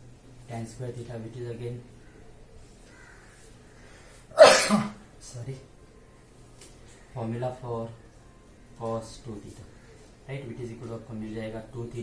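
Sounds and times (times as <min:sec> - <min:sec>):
man coughing: 0:04.3 - 0:05.0.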